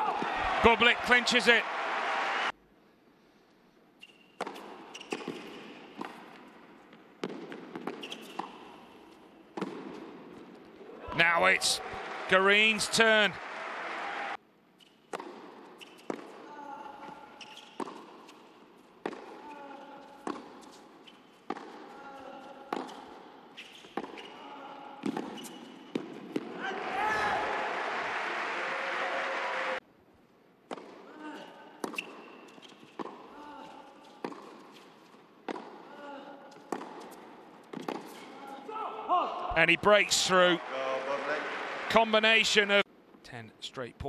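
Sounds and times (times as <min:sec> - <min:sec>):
applause: 0:00.3 - 0:02.5, 0:11.4 - 0:14.4, 0:27.2 - 0:29.8, 0:39.9 - 0:42.6
tennis ball hit with rackets: 0:07.2 - 0:08.6, 0:09.6 - 0:10.1, 0:21.5 - 0:21.9, 0:36.6 - 0:38.2.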